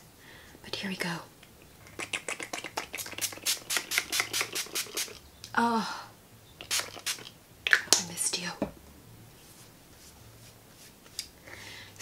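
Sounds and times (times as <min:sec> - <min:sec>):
spray bottle spritzes: 0:02.8 - 0:05.2, 0:06.6 - 0:07.3.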